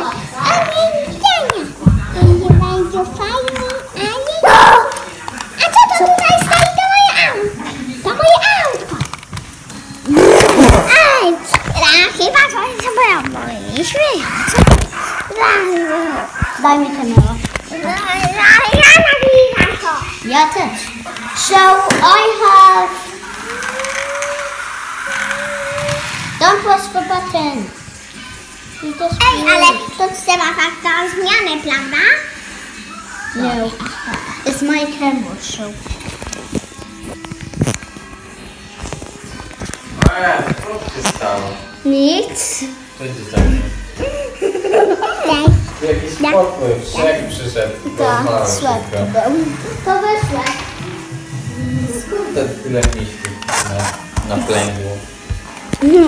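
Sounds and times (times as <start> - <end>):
children's voices: 0.0 - 9.2, 10.1 - 35.8, 49.7 - 50.8
background music: 0.0 - 56.0
toy car motor whirring: 23.0 - 26.4, 53.0 - 54.8.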